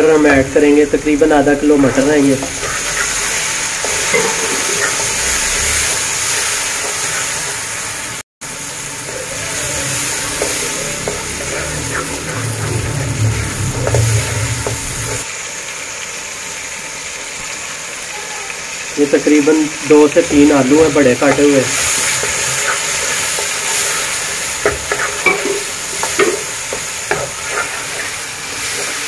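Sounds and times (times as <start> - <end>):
peas sizzling in hot oil: 0.0 - 29.0
wooden spatula stirring: 9.8 - 15.2.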